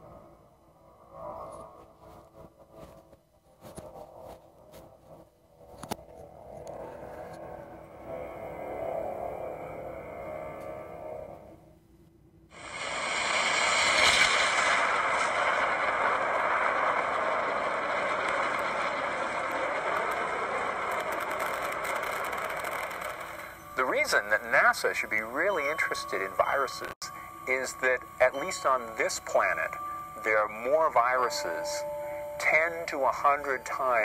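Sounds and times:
rocket launch rushing noise: 12.6 - 23.6.

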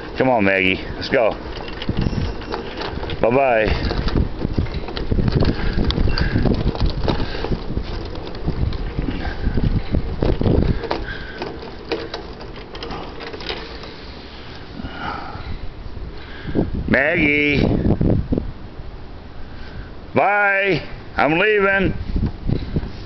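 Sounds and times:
wind buffeting microphone: 0.0 - 20.1, 21.8 - 23.0.

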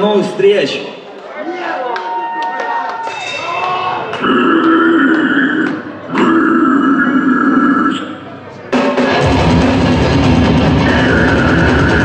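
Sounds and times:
guttural growls into microphone: 4.1 - 8.2.

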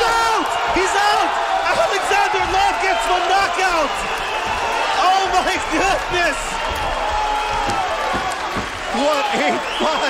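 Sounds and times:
crowd noise: 0.0 - 10.0
dull thuds: 2.0 - 8.9.

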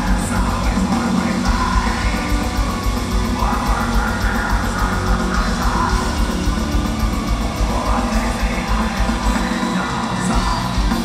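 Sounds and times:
distorted guitars: 0.0 - 11.0
fast drumming: 0.0 - 11.0.

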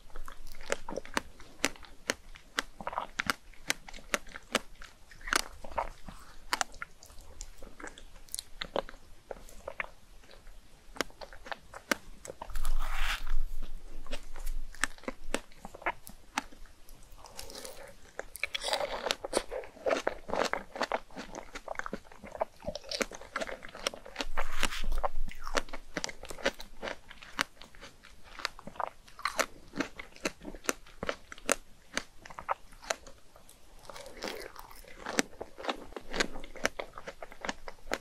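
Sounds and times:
chewing and biting with mouth clicks: 0.0 - 38.0.

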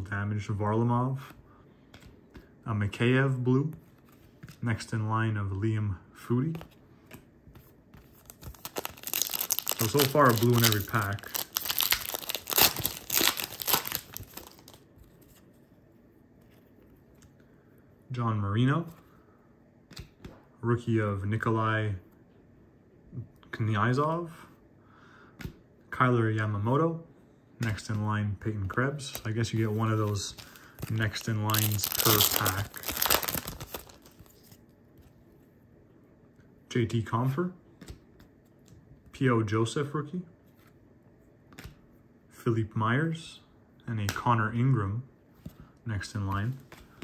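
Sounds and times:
foil wrapper tearing and crinkling: 8.3 - 14.8, 30.4 - 34.3.

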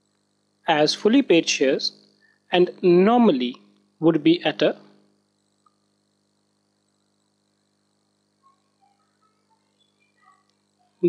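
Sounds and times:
faint steady hum: 0.0 - 11.0
faint short chirps: 8.4 - 10.5.

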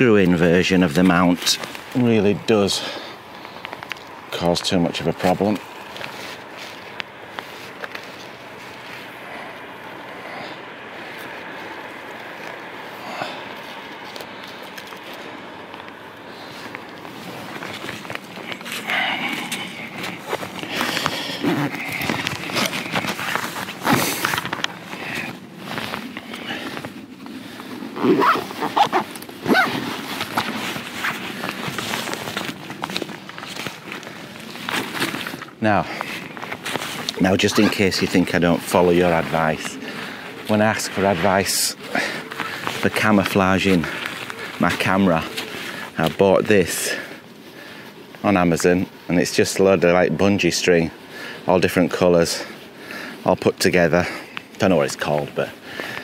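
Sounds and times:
faint rustling and handling: 0.0 - 56.0
footsteps crunching through snow: 0.3 - 54.1.

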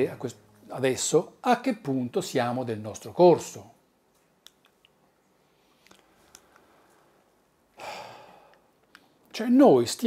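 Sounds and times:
man breathing close to microphone: 7.8 - 9.2.

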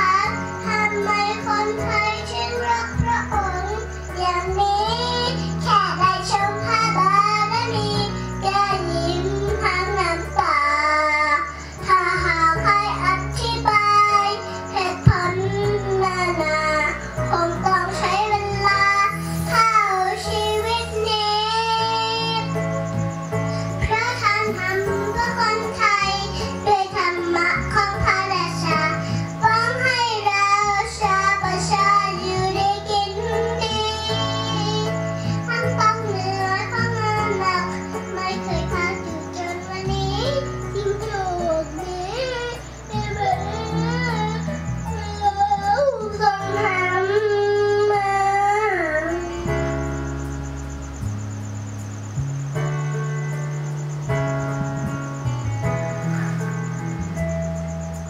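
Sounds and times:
girl singing into microphone: 0.0 - 50.0
backing music with bass: 0.0 - 58.0.

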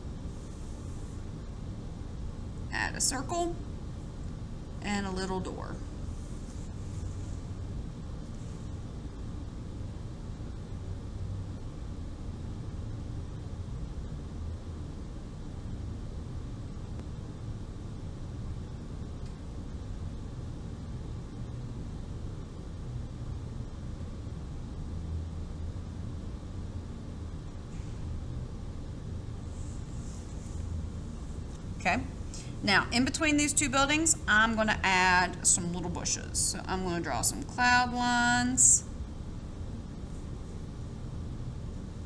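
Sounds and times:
low background rumble: 0.0 - 42.0.

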